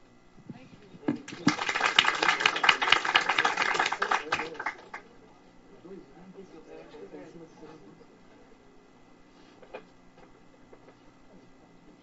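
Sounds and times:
audience applauding: 1.3 - 5.0.

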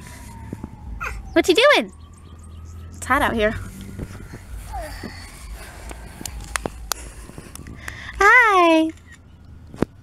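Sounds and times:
wind rumble on microphone: 0.0 - 1.0, 2.0 - 10.0.

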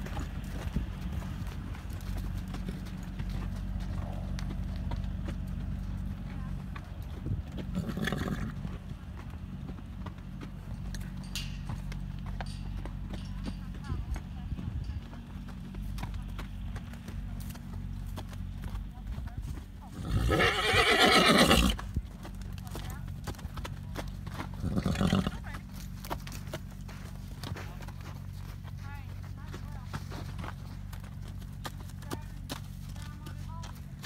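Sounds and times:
horse whinnying: 7.7 - 8.6, 19.9 - 21.8, 24.6 - 25.4.

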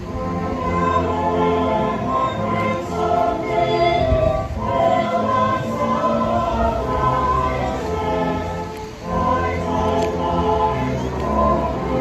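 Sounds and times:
choir singing a carol: 0.0 - 12.0.

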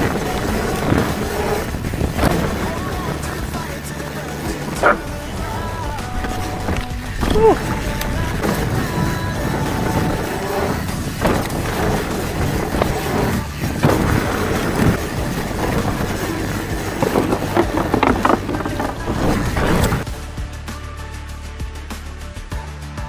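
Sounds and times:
bike rattling over bumps: 0.0 - 20.1
tyre and wind noise: 0.0 - 20.1
background music: 0.0 - 23.0.

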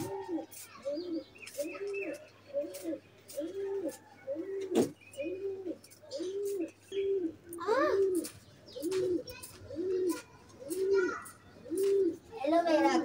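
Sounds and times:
bird cooing: 0.0 - 13.0.

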